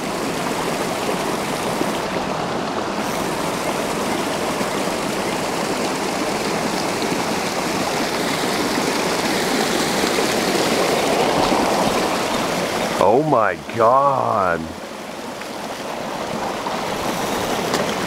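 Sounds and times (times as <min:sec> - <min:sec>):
water rushing over rocks: 0:00.0 - 0:18.0.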